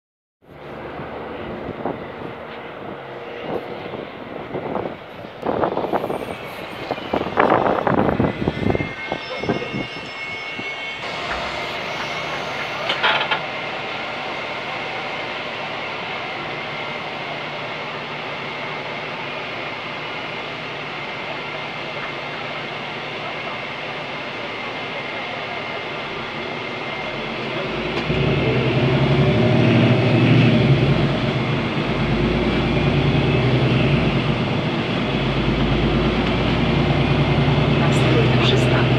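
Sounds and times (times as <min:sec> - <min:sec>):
bus engine: 0:00.4 - 0:09.8, 0:10.5 - 0:38.9
traffic noise: 0:00.4 - 0:38.9.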